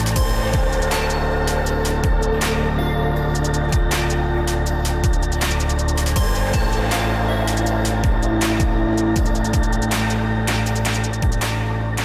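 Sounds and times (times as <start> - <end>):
electronic music with steady beat: 0.0 - 12.0.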